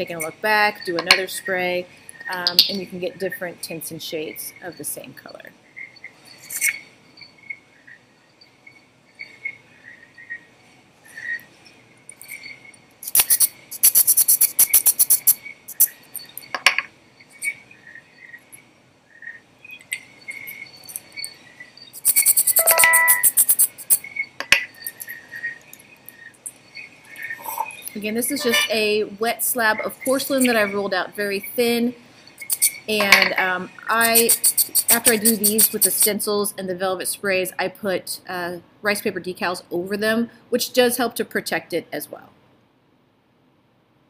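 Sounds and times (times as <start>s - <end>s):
aerosol can spraying: 13.0s - 15.8s, 34.0s - 35.9s.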